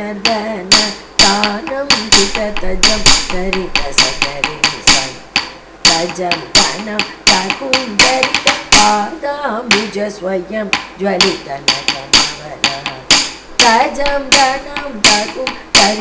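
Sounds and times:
wooden stick knocking on wooden block: 0.2s - 9.1s, 10.7s - 16.0s.

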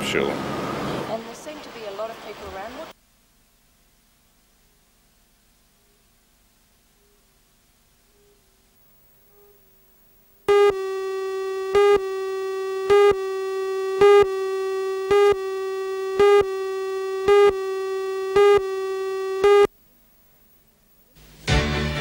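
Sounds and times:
buzzy electronic tone: 10.5s - 19.7s
electronic beeps: 10.5s - 19.7s.

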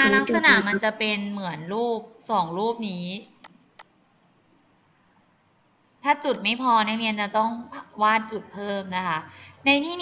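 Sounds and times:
computer mouse clicks: 3.3s - 4.0s.

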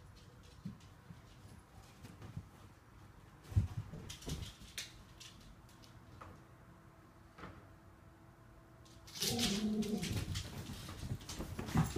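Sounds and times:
puppy grumbling: 9.2s - 10.3s
bedding rustling: 9.3s - 11.9s.

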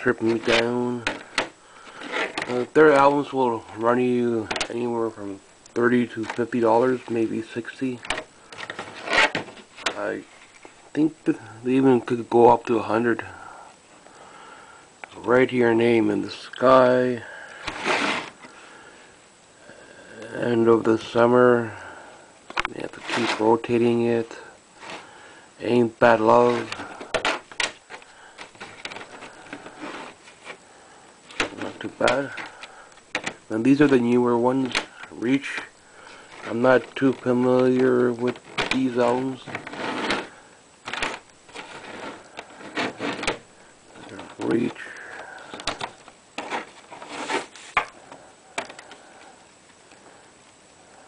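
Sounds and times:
faint room hiss: 0.0s - 51.0s
plastic cases clicking: 40.9s - 47.0s.

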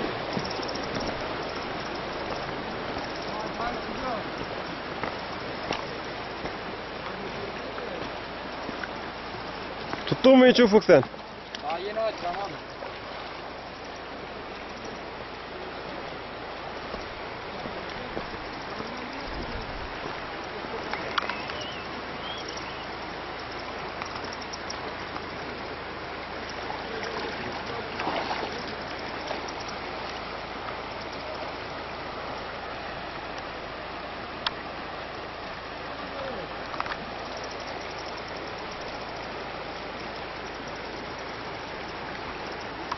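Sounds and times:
river running over rocks: 0.0s - 42.9s.

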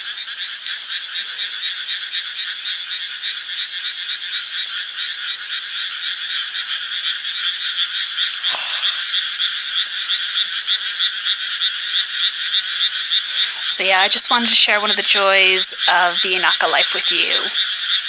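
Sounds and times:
chorus of frogs croaking: 0.0s - 18.0s.

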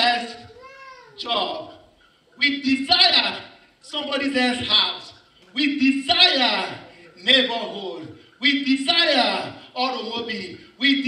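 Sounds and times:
man speaking: 0.0s - 11.0s
man imitating child crying: 0.4s - 1.4s.

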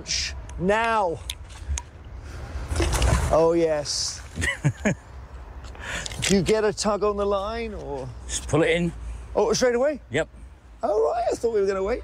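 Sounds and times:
magnet splashing into water: 2.6s - 3.5s.

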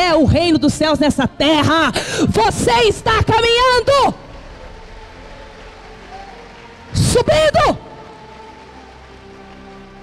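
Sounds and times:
crowd applauding: 2.4s - 10.0s
soft held chord of music: 3.3s - 10.0s.

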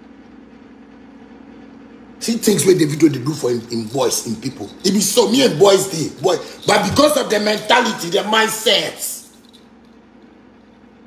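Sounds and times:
low background hum: 0.0s - 11.0s
faint constant tone: 2.2s - 11.0s.

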